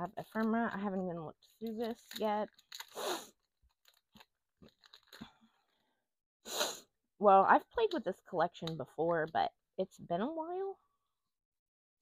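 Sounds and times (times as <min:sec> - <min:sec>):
paper and card rustling: 0:00.0 - 0:05.4.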